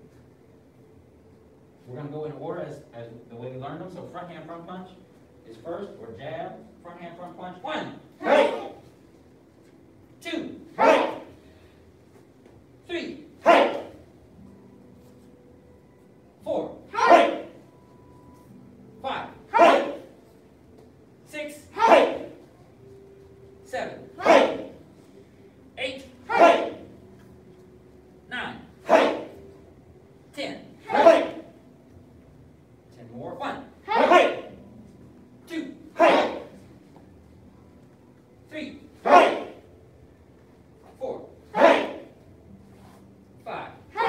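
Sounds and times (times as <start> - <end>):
group shouting together: 8.2 - 8.8, 10.8 - 11.3, 13.4 - 14.0, 16.9 - 17.6, 19.5 - 20.1, 21.7 - 22.4, 24.2 - 24.8, 26.2 - 26.9, 28.8 - 29.4, 30.8 - 31.5, 33.8 - 34.6, 35.9 - 36.6, 39.0 - 39.7, 41.5 - 42.2.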